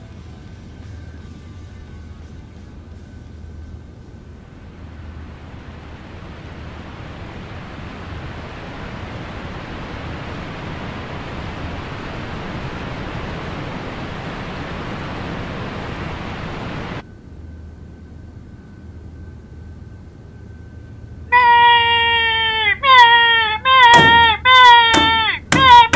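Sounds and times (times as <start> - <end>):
faint room hum: 0.0 - 25.9
waterfall rushing: 4.6 - 17.0.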